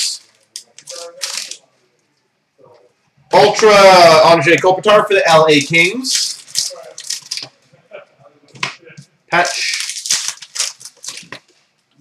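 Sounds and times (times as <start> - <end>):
cards and foil wrapper crinkling: 0.0 - 1.6, 5.5 - 7.5, 9.4 - 11.5.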